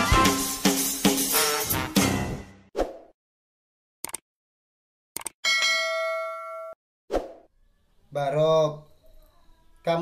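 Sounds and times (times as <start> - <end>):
notification bell ding: 5.5 - 6.8.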